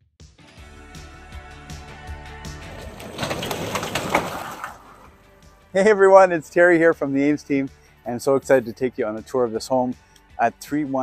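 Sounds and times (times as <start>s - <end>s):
garage door rolling open: 2.4s - 5.3s.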